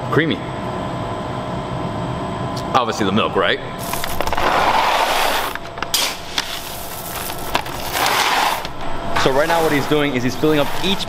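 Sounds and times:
coffee beans pouring rattle: 0:03.8 - 0:08.7.

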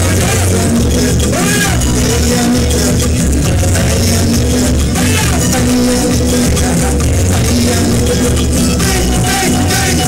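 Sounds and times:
calypso band music: 0:00.0 - 0:10.0.

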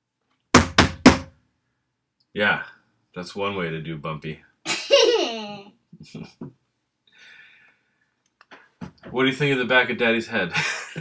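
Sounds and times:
loud knocks: 0:00.6 - 0:01.3.

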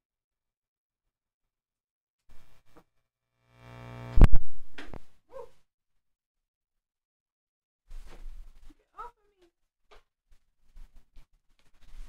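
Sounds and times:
buzzy held synth note: 0:03.5 - 0:04.4.

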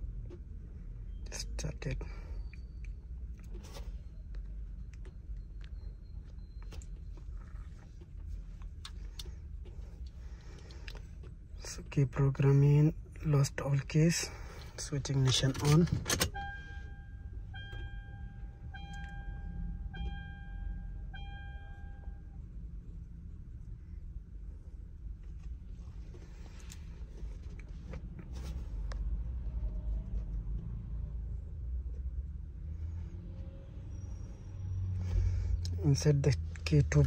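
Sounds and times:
dashboard warning buzzer beeping: 0:16.2 - 0:22.2.

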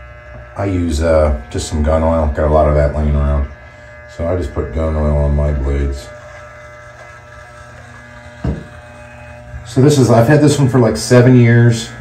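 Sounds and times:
hair trimmer humming: 0:00.0 - 0:12.0.

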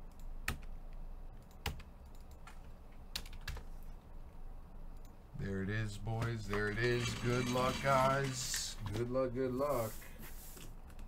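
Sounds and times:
keyboard keys clicking: 0:01.4 - 0:03.6.

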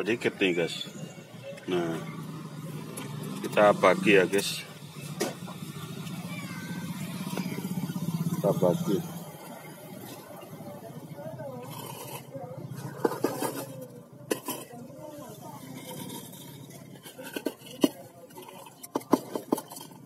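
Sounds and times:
indistinct talking: 0:00.0 - 0:20.0.

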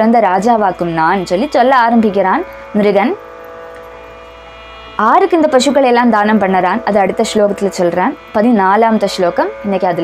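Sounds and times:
person speaking: 0:00.0 - 0:03.2, 0:05.0 - 0:10.0
background drone of held tones: 0:00.0 - 0:10.0.

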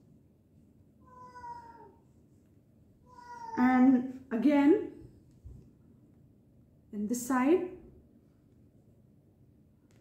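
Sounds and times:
cat meowing: 0:01.0 - 0:02.0, 0:03.0 - 0:03.7.

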